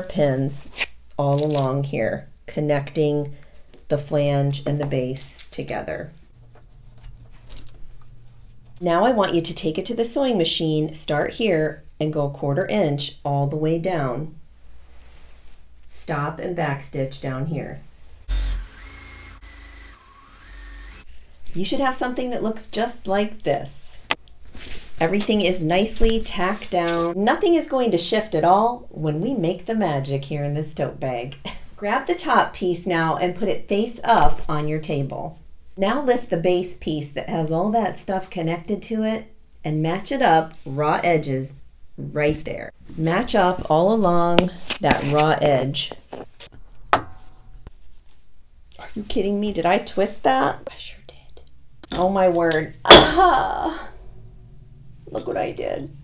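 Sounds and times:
sewing machine motor whine: 18.3 - 21.1.

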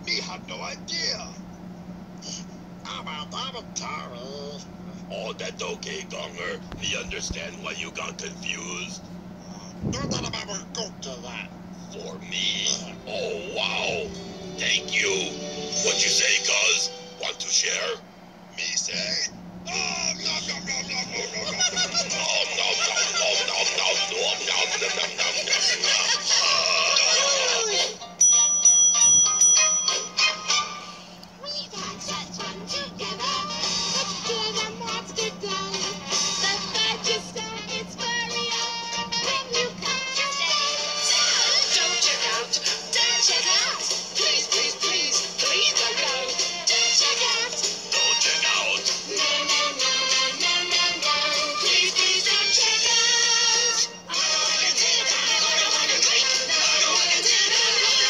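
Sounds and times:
puppet character voices: 2.8 - 9.0, 9.8 - 18.0, 18.6 - 28.0, 40.5 - 49.9
tv music: 2.8 - 58.0
singing: 22.0 - 28.0, 31.4 - 58.0
service bell ringing rapidly: 28.2 - 30.2.

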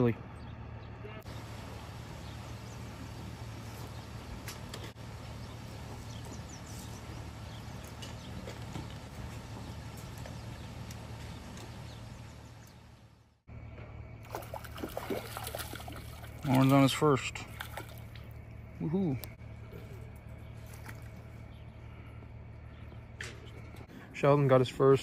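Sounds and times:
constant low hum: 0.0 - 25.0.

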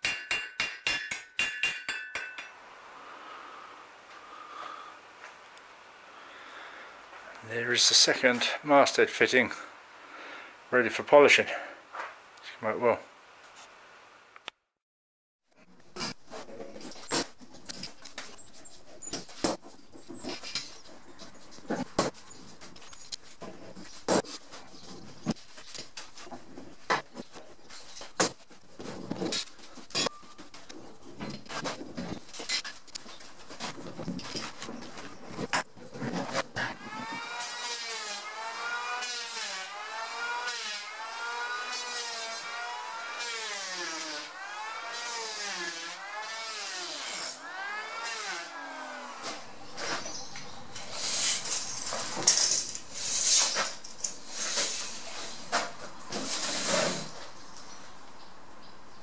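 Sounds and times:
electric hand planer shaving wood: 36.7 - 49.4.

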